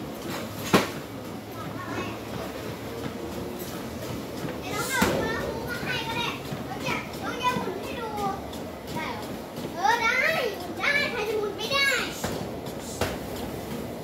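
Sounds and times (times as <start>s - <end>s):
children calling and chattering: 1.2s - 13.0s.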